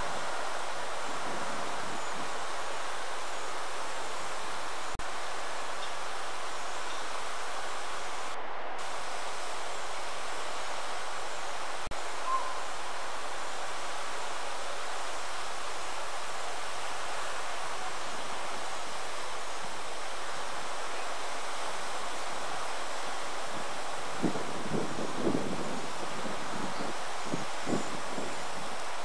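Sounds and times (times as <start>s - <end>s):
steady rushing noise: 0.0s - 29.0s.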